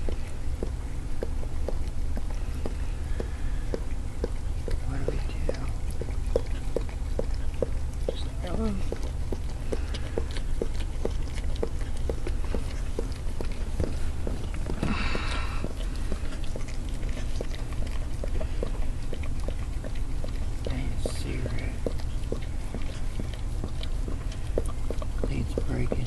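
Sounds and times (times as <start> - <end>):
dog licking wetly: 0.0 - 26.0.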